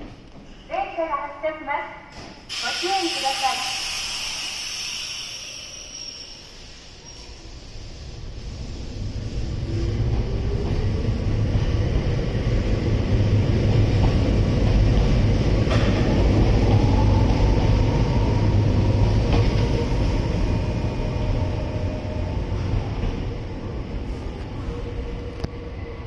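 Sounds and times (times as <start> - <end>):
train wheels rumbling on rail: 2.2 - 26.0.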